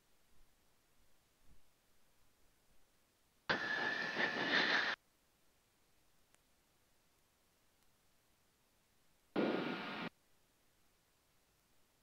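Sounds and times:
faint steady whistle: 3.5s - 5.0s
radio static burst: 3.5s - 5.0s, 9.4s - 10.1s.

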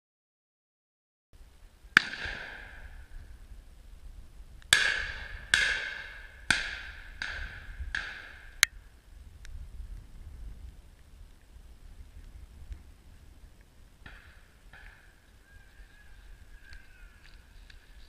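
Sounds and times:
wind rumble on microphone: 1.4s - 18.0s
shotgun shots: 2.0s - 2.9s.

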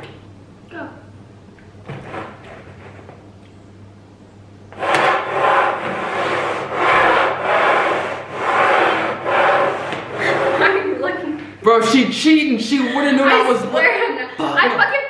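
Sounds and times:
bowls scraping on wooden table: 1.9s - 3.2s, 4.7s - 10.9s.

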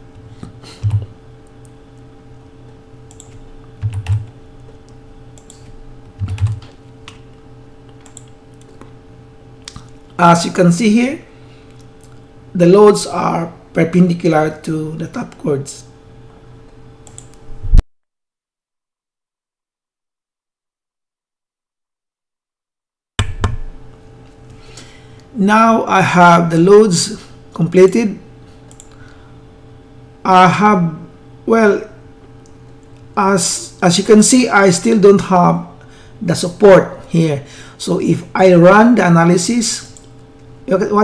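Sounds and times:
steady low hum: 0.0s - 17.8s, 23.2s - 41.0s
keyboard keystrokes: 0.8s - 1.1s, 3.1s - 4.3s, 5.4s - 7.2s
sharp clicks: 17.0s - 17.4s.

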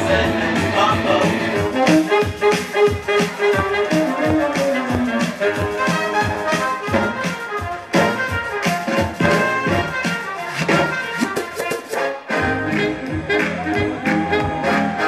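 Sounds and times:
dance music with steady beat: 0.0s - 15.0s.

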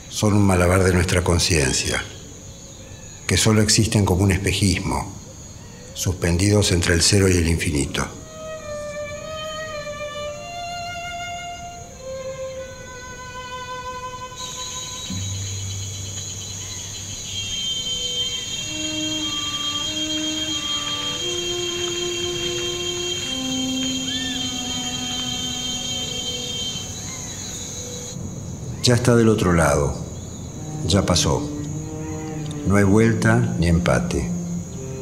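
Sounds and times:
bowed strings holding long notes: 6.7s - 28.2s, 28.9s - 35.0s
high steady tone: 17.0s - 28.2s.

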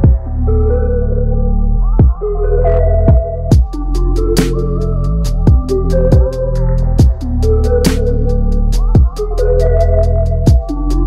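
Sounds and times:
kick drum: 0.0s - 0.3s, 2.0s - 2.2s, 3.1s - 3.8s, 5.5s - 6.4s, 7.0s - 7.3s, 8.9s - 9.2s, 10.5s - 10.8s
held synth melody: 0.0s - 11.0s
deep bass note: 2.9s - 11.0s.

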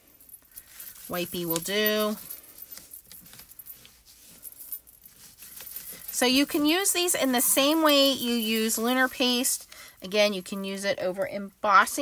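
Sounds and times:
light jingling clinks: 0.0s - 9.4s.

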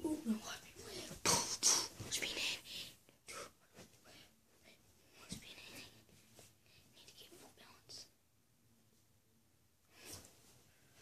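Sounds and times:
boy whispering breathily: 0.0s - 6.0s.

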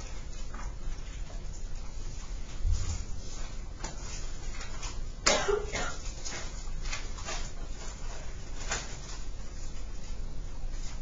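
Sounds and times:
low room hum: 0.0s - 11.0s
person coughing: 5.2s - 6.1s.

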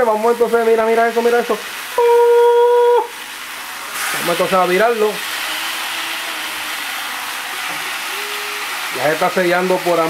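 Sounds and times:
chicken sizzling in skillet: 0.0s - 10.0s.

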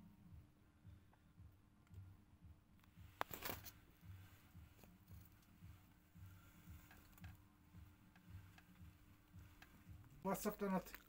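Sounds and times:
faint steady hum: 0.0s - 11.0s
brief rustle: 3.2s - 3.8s.

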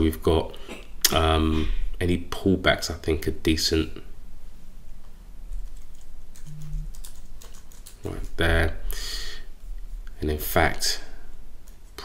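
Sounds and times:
keyboard keys clicking: 5.7s - 8.0s.

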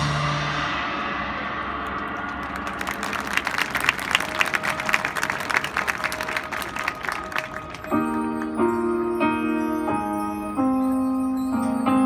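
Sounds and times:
band music: 0.0s - 12.0s
audience applause: 1.8s - 8.6s
mallet percussion chords: 7.6s - 12.0s.

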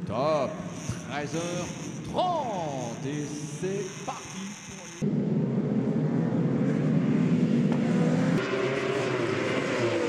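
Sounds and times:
race commentator speaking: 0.0s - 5.0s
motorcycle engines: 0.0s - 10.0s.

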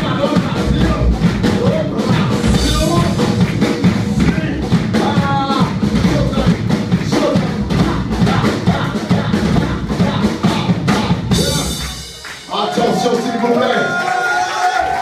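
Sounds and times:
live rock band playing: 0.0s - 12.7s
drum kit beat: 0.0s - 13.5s.

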